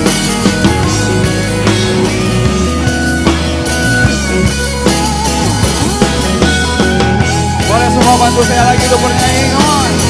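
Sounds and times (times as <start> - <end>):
live pop-rock band: 0.0 - 10.0.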